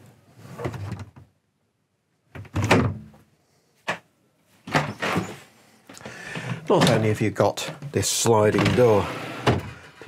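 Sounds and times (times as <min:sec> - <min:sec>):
wooden sliding door closing: 0:08.4 - 0:10.0.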